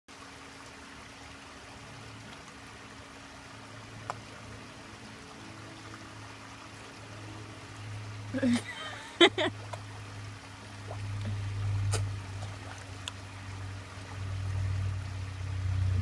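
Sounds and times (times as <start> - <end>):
low steady hum: 0.1 - 16.0
water trickling in pond: 0.1 - 16.0.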